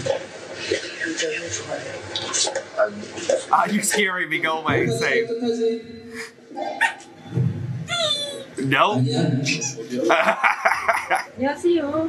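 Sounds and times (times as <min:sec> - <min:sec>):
whiny wordless voice sounds: 0:03.5 - 0:05.2, 0:08.1 - 0:11.4.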